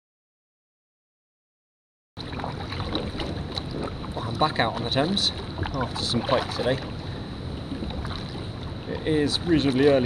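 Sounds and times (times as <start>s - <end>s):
paddle water splashes: 2.2s - 10.0s
wind rumbling on microphone: 2.2s - 10.0s.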